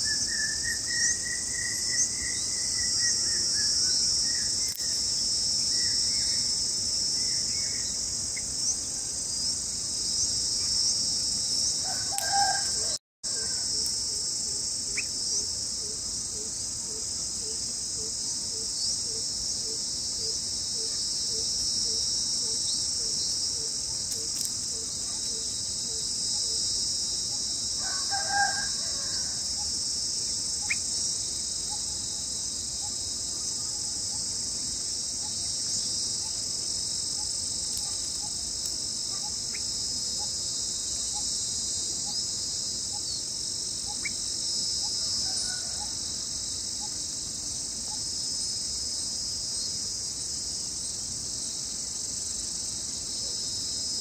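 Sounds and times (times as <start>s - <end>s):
crickets chirping: 0.0s - 54.0s
rooster crowing faintly: 11.8s - 13.9s, 27.8s - 29.4s, 45.0s - 46.2s.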